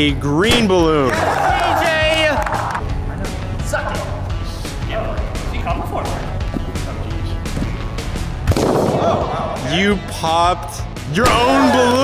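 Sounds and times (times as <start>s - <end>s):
background music: 0.0s - 12.0s
balloon bursting pop: 8.4s - 9.3s
person shouting: 11.2s - 12.0s.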